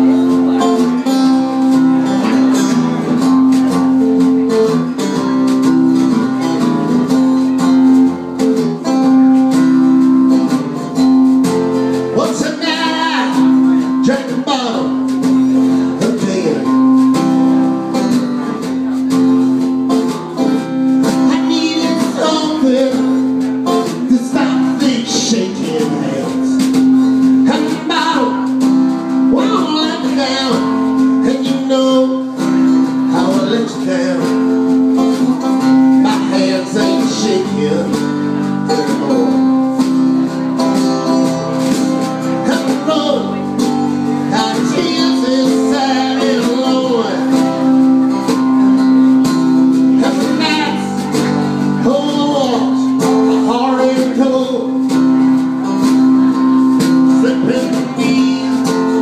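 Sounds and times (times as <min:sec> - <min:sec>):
strummed acoustic guitar: 0:00.0 - 0:59.0
person singing: 0:11.4 - 0:19.2, 0:19.9 - 0:59.0.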